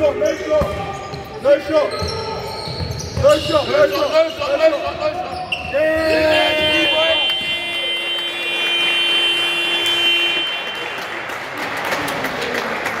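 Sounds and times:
crowd and player noise: 0:00.0 - 0:13.0.

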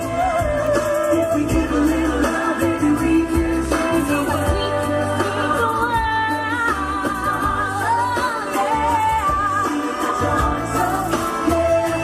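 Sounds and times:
pop music with steady bass: 0:00.0 - 0:12.0
woman singing: 0:00.0 - 0:12.0.

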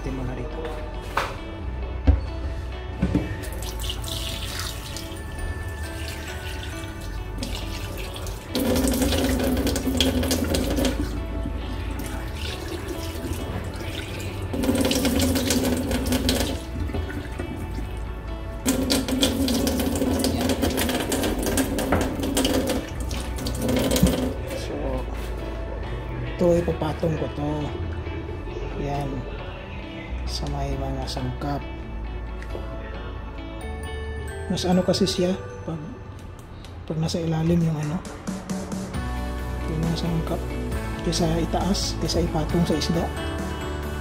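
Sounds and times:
tap water splashing in sink: 0:06.0 - 0:11.2, 0:12.0 - 0:17.8, 0:18.7 - 0:24.4.

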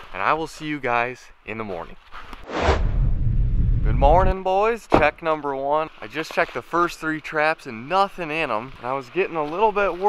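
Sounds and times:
whoosh: 0:02.4 - 0:04.1
heavy low rumble: 0:02.4 - 0:04.4.

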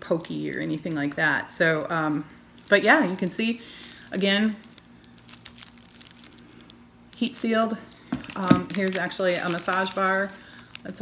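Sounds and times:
shrink-wrap plastic crinkling: 0:00.0 - 0:11.0.

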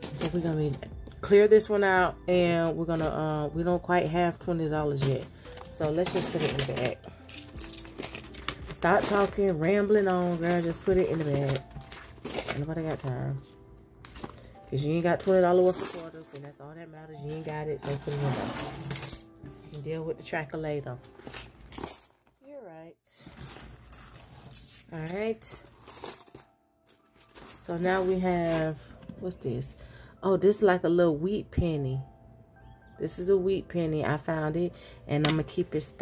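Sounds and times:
coins clinking: 0:00.0 - 0:01.0, 0:02.7 - 0:03.6, 0:04.9 - 0:13.4, 0:14.0 - 0:16.6, 0:17.2 - 0:19.9, 0:21.1 - 0:22.2, 0:23.3 - 0:28.1
plastic pouch rustling: 0:05.3 - 0:13.5
plastic pocket crinkling: 0:07.5 - 0:09.4
coins clicking together: 0:15.6 - 0:16.3, 0:17.3 - 0:19.4.

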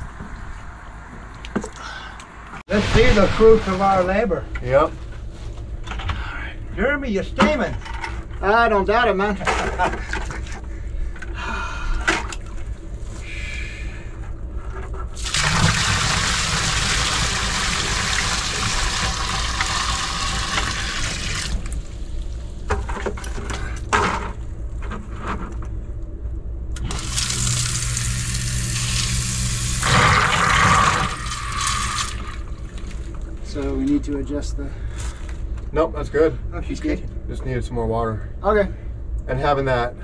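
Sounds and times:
sump pump motor hum: 0:07.1 - 0:25.8, 0:26.7 - 0:33.8
water poured from a bucket: 0:15.2 - 0:22.0
water rushing from pump: 0:15.2 - 0:22.0, 0:26.8 - 0:33.0.

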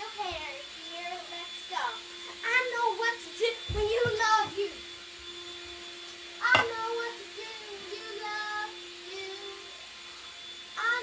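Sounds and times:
girl singing: 0:00.0 - 0:04.8, 0:06.4 - 0:09.8, 0:10.8 - 0:11.0.

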